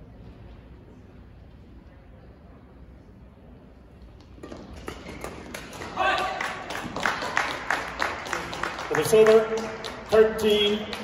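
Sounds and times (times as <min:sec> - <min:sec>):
rackets hitting shuttlecock: 0:04.2 - 0:07.0.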